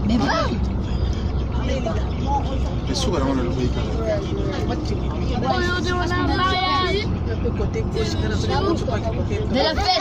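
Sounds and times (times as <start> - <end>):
limousine rumble from inside cabin: 0.0 - 10.0
voices talking: 0.0 - 10.0.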